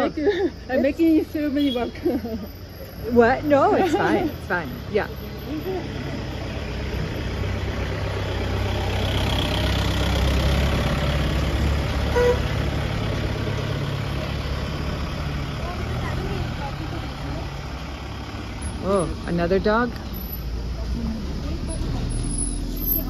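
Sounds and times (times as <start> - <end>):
truck engine driving past: 2.4 - 23.0.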